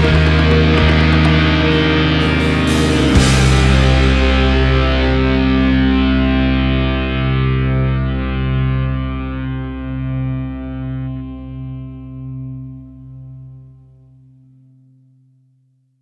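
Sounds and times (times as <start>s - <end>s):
distorted electric guitar chord ringing: 0.0s - 14.8s.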